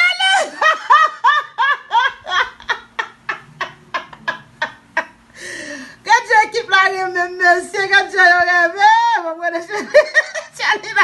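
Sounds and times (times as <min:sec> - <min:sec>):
person laughing hard: 0:00.2 - 0:05.2.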